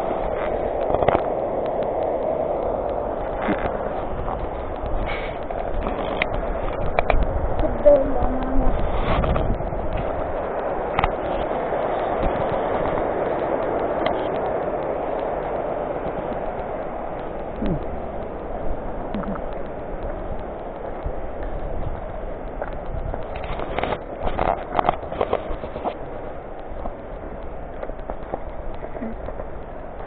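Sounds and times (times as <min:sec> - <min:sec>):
steady rushing noise: 0:00.0 - 0:30.0.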